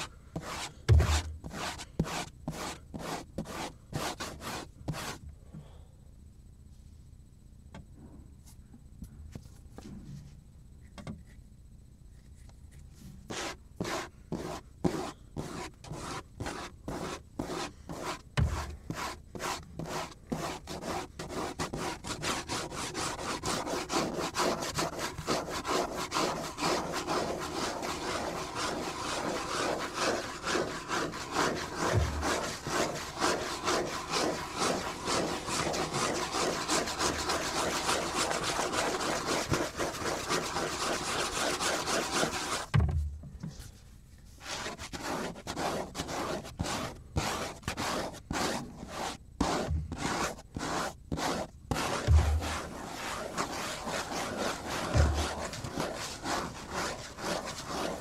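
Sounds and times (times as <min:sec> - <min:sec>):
fingers scratching cutting board: 0:00.0 - 0:05.2, 0:13.3 - 0:42.7, 0:44.4 - 0:58.0.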